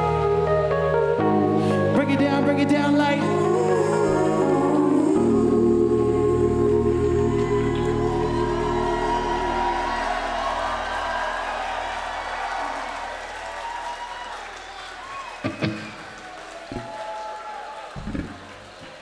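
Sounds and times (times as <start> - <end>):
concert crowd noise: 5.2 - 19.0.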